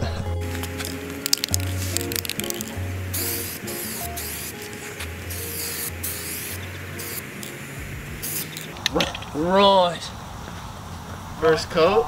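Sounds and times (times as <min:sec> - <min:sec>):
background music with bass line: 0:00.0 - 0:08.3
aerosol spray can hissing: 0:00.4 - 0:08.8.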